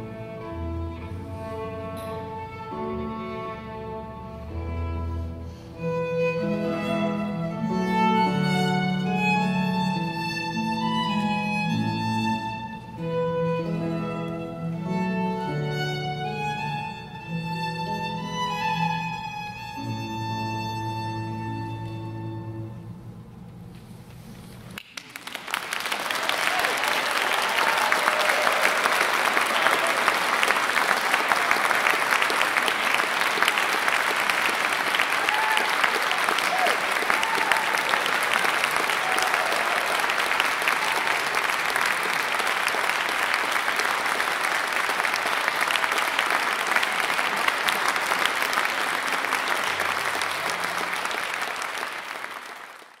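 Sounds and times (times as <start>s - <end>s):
music: 0.0s - 24.2s
audience applause: 24.8s - 53.0s.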